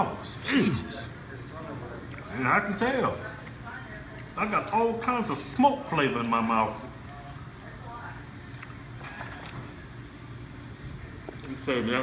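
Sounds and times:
low room hum: 0.0s - 12.0s
chewing: 8.4s - 9.7s.

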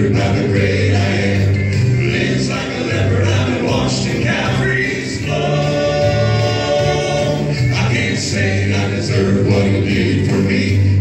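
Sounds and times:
men singing in harmony: 0.0s - 11.0s.

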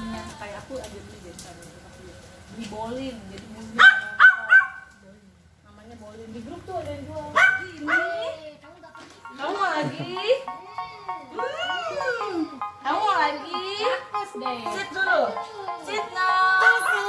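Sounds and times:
dog barking: 3.8s - 4.9s, 7.4s - 8.4s.

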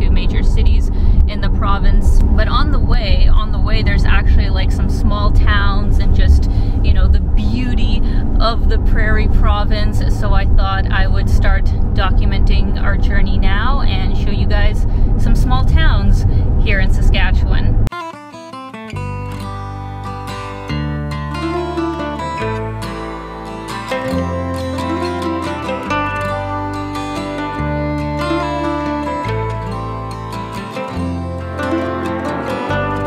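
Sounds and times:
plucked acoustic guitar music: 0.0s - 16.2s, 16.8s - 33.0s
car cabin road rumble: 0.0s - 17.9s
woman talking: 0.0s - 17.9s.

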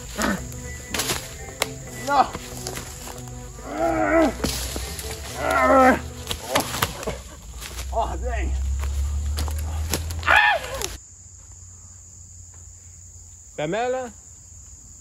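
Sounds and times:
crickets chirping: 0.0s - 15.0s
people yelling: 3.5s - 7.2s, 7.9s - 11.0s.

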